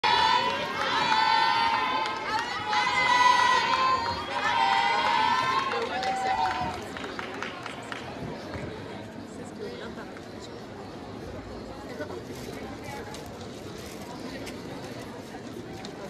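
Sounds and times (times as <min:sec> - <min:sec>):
crowd cheering: 0:00.0 - 0:08.0.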